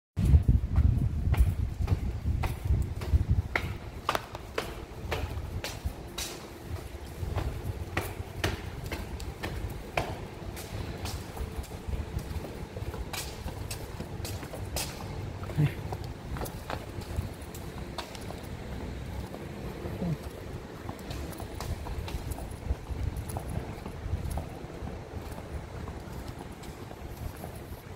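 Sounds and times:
footsteps on concrete: 0.2 - 27.9.

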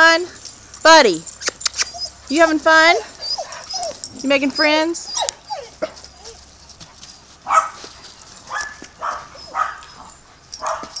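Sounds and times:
dog barking: 7.5 - 7.8, 8.5 - 10.0, 10.6 - 11.0.

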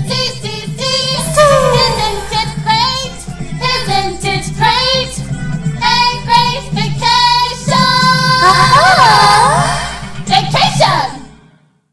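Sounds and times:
person singing: 1.0 - 4.1, 8.4 - 10.0.

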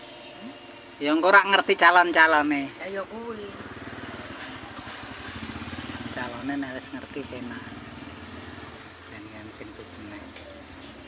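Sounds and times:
small engine running: 2.9 - 11.0.

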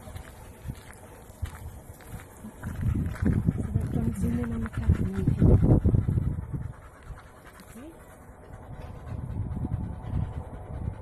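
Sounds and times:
dog panting: 2.2 - 11.0.

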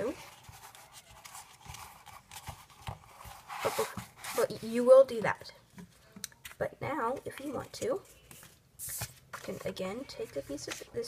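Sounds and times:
paper and cardboard rustling: 0.0 - 5.2, 5.8 - 11.0.

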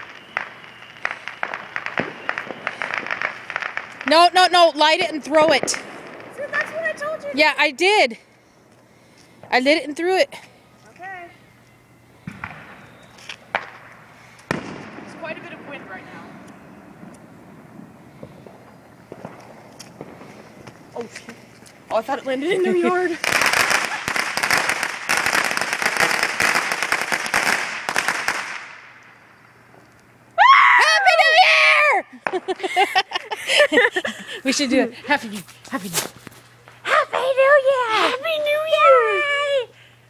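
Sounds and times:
firework crackling pops: 0.0 - 7.6, 12.2 - 22.4, 23.0 - 30.4, 32.2 - 32.7.

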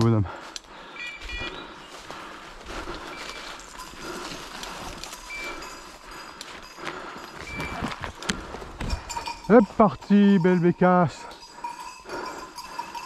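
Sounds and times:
footsteps crunching through dry leaves: 1.2 - 8.9.

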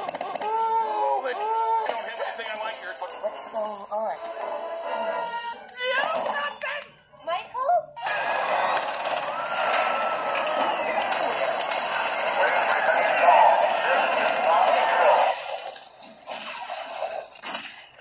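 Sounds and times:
music: 2.4 - 7.3
blasts and crashes: 8.0 - 18.0
voices: 10.4 - 15.3.

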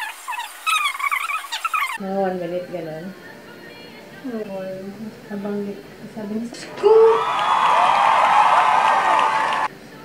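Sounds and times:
high-pitched squeaky voice: 0.0 - 2.0.

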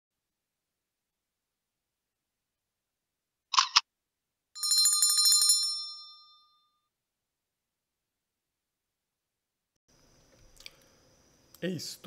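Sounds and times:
bell ringing with rattle: 4.6 - 6.7.

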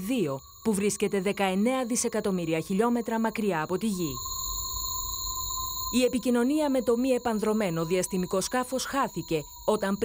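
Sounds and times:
steady high tones: 0.0 - 10.0.

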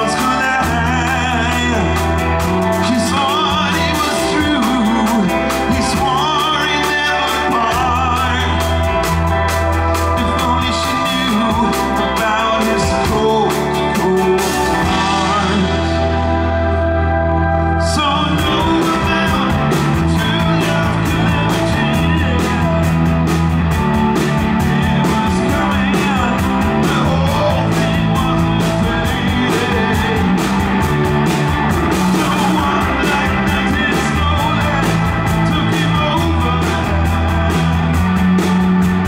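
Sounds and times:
drum kit with cymbals: 0.0 - 16.4, 18.4 - 39.0
electric bass: 0.0 - 39.0
electric guitars: 0.0 - 39.0.

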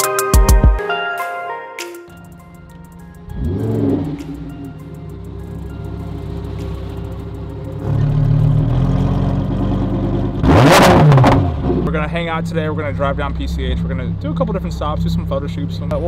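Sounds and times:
car engine starting and idling: 2.1 - 16.0.

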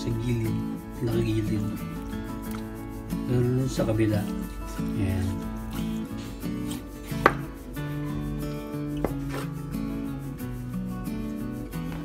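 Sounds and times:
background music: 0.0 - 12.0
knife knocking on cutting board: 7.2 - 7.5.

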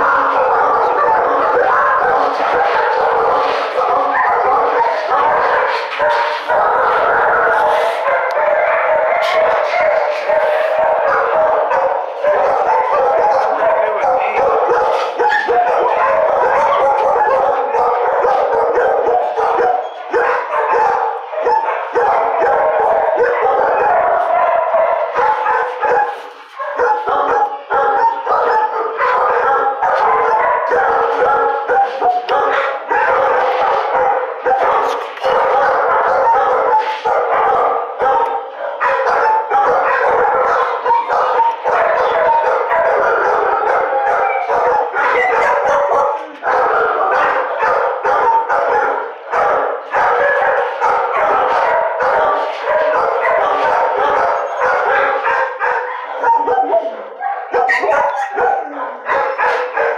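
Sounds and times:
many dogs barking: 0.0 - 59.9.

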